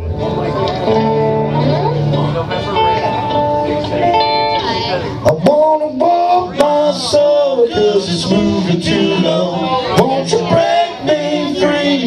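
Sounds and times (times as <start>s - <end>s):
live band instrumental: 0.0s - 12.0s.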